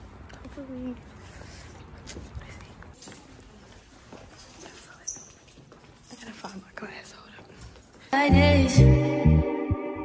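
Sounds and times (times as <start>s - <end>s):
hallway room tone: 0.0s - 10.0s.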